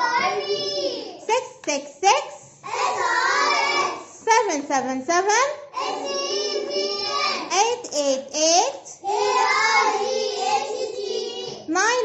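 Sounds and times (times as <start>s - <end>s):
children chanting sing-song: 0.0s - 1.3s, 2.5s - 4.2s, 5.7s - 7.6s, 9.0s - 11.7s.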